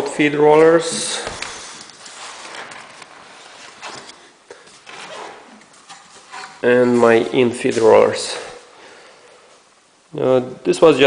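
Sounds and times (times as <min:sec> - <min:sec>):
faint hiss: 0:06.2 - 0:11.0.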